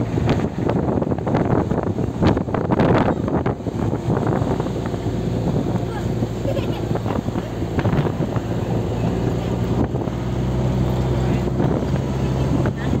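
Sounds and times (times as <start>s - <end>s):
vehicle engine droning: 0.0s - 13.0s
wind buffeting microphone: 0.0s - 13.0s.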